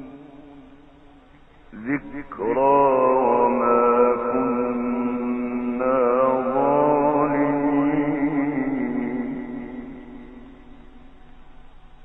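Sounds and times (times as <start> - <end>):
man chanting recitation: 1.7 - 10.9.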